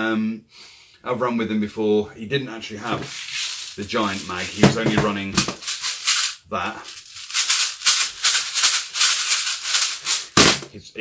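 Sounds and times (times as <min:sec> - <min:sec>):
bbs rattling in a magazine: 0:02.8 - 0:10.7.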